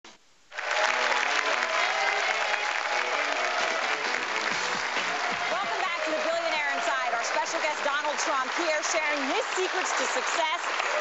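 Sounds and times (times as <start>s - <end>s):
audience applauding: 0.5s - 11.0s.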